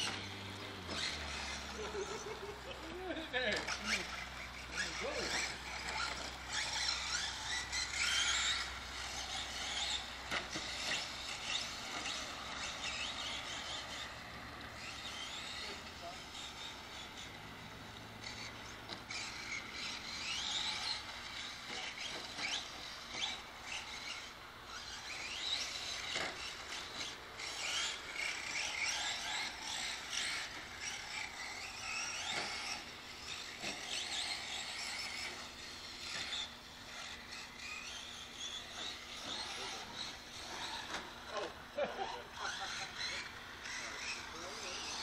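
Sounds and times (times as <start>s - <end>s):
rc car motors whining: 0.0s - 45.0s.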